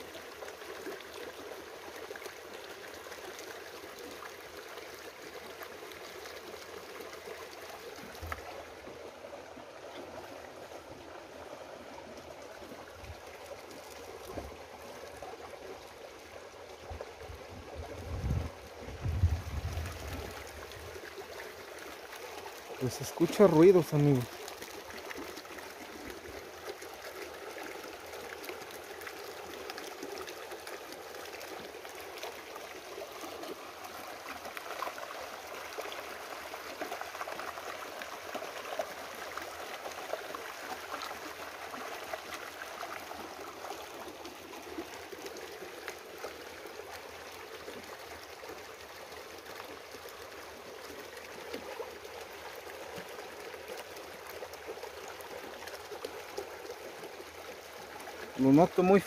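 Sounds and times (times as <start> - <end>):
creek babbling: 0.0 - 59.0.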